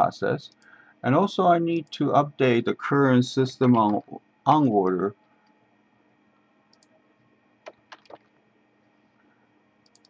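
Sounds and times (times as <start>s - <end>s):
low room hum: 0.0s - 10.0s
computer mouse clicks: 6.7s - 7.0s.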